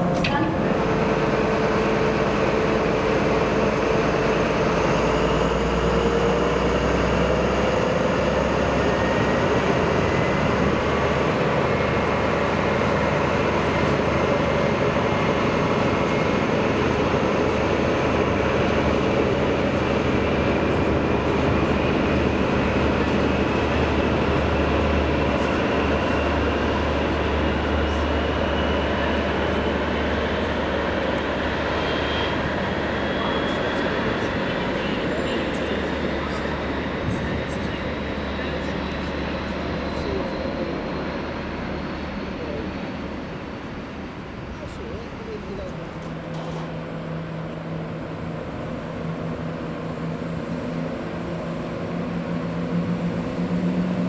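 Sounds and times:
diesel train rumbling past: 0.0 - 54.0.

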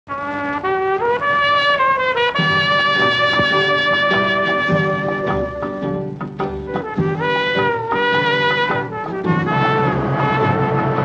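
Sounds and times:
solo melody line: 0.1 - 11.0
fuller band accompaniment: 1.0 - 11.0.

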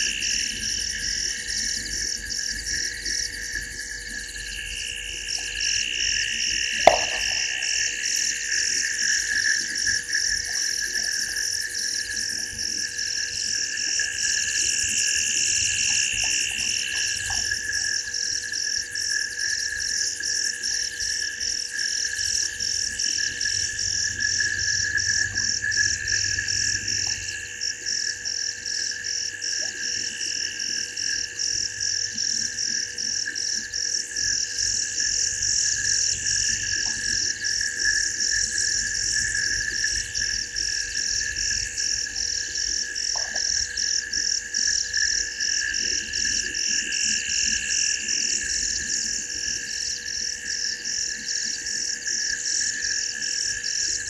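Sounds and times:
low continuous drone: 0.0 - 54.0
pulsing high insect trill: 0.0 - 54.0.

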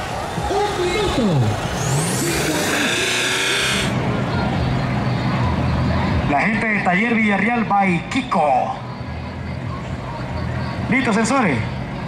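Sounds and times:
loud rushing noise: 0.0 - 6.8
race vehicle engine running: 0.0 - 12.0.

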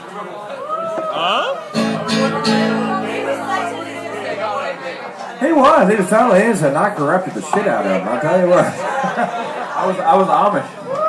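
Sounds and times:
indistinct crowd chatter: 0.0 - 11.0
guitar chord ringing: 1.8 - 6.6.

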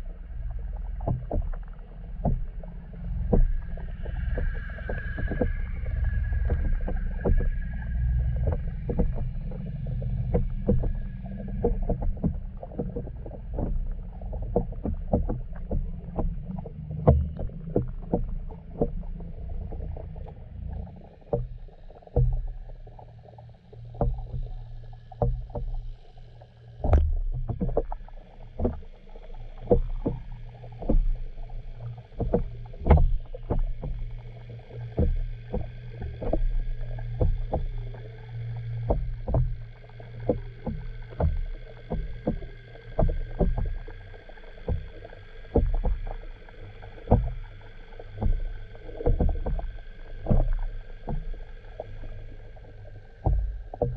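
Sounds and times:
low underwater rumble: 0.0 - 53.9
sharp underwater clicks: 0.3 - 53.9.

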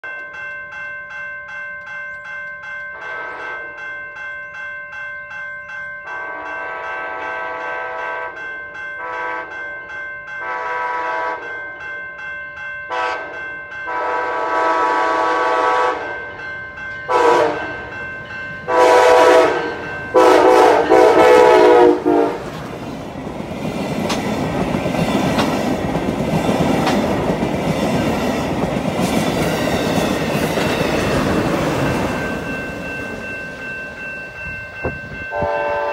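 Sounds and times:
railroad crossing bell ringing: 0.0 - 35.9
train horn blasts: 3.0 - 3.7, 6.1 - 8.4, 9.0 - 9.6, 10.4 - 11.5, 12.9 - 16.2, 17.1 - 17.8, 18.7 - 22.6, 35.3 - 35.9
train wheels rumbling on rail: 16.9 - 35.9.

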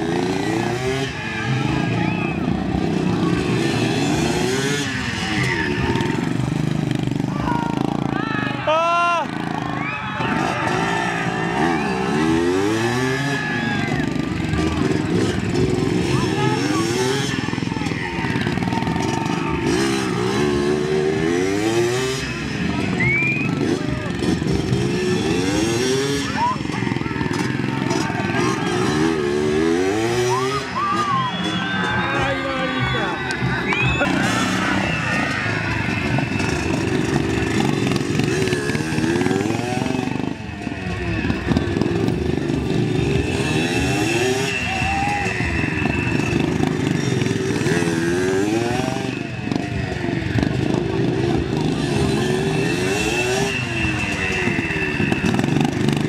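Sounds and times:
crowd voices: 0.0 - 56.0
motorcycle engine revving: 0.0 - 56.0.

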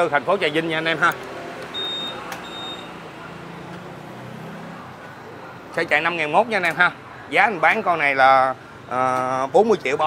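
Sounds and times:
high electronic beeps: 1.7 - 3.0.

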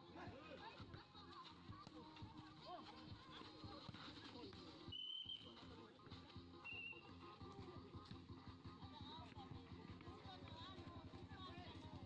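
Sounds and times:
faint crowd voices: 0.0 - 12.0
referee's whistle blasts: 4.9 - 5.5, 6.6 - 7.0.

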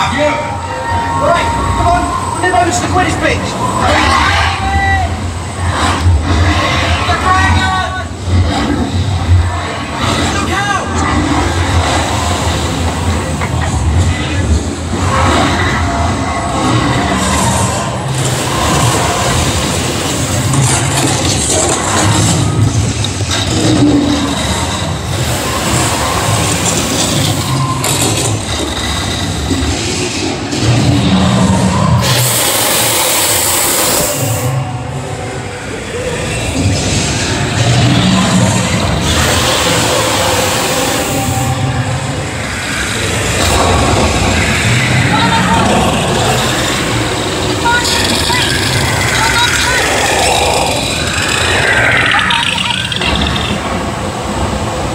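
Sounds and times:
soundtrack music and effects: 0.0 - 54.9
loud hiss: 32.0 - 34.6.

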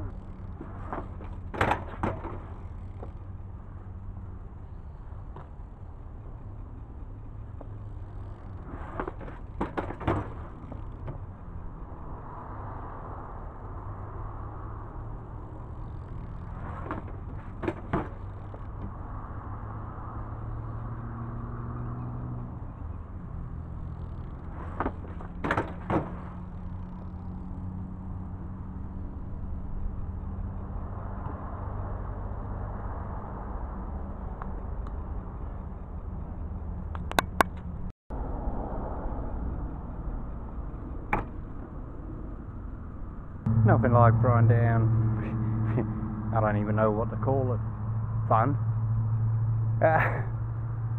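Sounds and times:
steady low hum: 0.0 - 21.0, 22.6 - 50.9
bike tyres rolling on concrete: 0.0 - 22.0, 22.6 - 37.9
bike clattering on concrete: 0.1 - 3.4, 7.5 - 11.4, 15.8 - 19.0, 24.0 - 27.2.

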